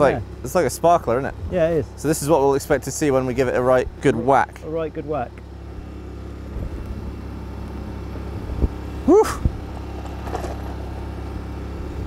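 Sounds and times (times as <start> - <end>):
generator engine humming: 0.0 - 12.0
short rising and falling cry: 9.0 - 9.6.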